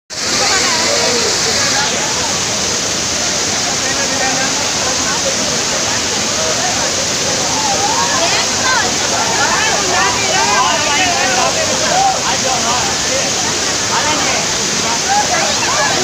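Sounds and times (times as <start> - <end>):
crowd chattering and shouting: 0.1 - 16.0
waterfall rushing: 0.1 - 16.0.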